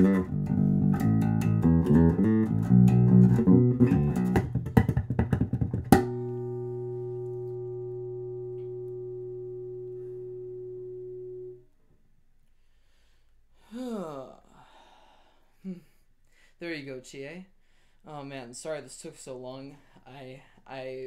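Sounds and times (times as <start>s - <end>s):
electric bass playing: 0.0s - 11.8s.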